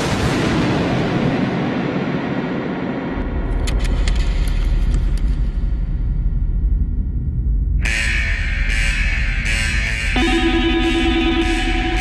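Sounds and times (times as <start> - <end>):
deep rumble: 0.0 - 8.6
sharp clicks or rattles: 3.5 - 5.4.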